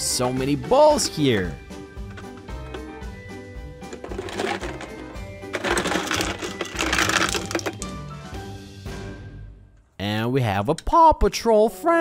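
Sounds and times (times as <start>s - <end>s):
background music: 0.0s - 12.0s
plastic balls and toy cars clattering: 2.0s - 3.0s, 3.8s - 8.0s.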